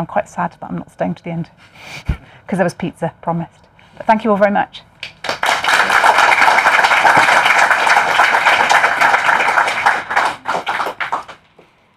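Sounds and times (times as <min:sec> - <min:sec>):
audience applauding: 0:05.0 - 0:11.5.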